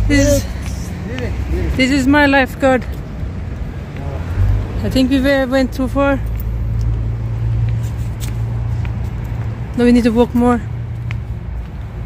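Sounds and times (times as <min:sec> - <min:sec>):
faint footstep scuffs on path: 0:06.3 - 0:12.0.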